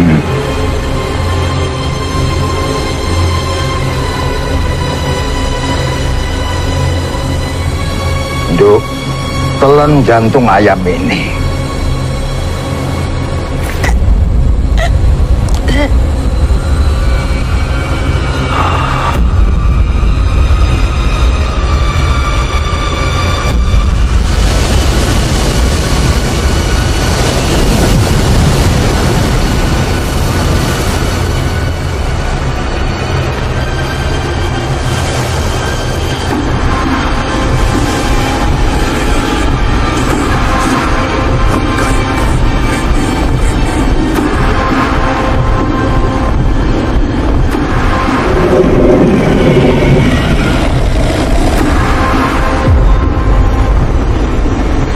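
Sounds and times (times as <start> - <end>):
dark horror film score: 0.0 - 54.9.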